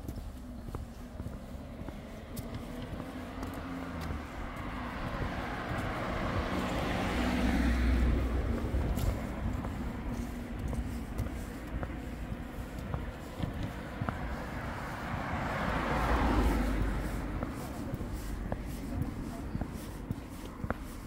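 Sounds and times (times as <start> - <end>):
background traffic noise: 0.0 - 21.0
car passing close by: 0.8 - 12.7, 13.4 - 21.0.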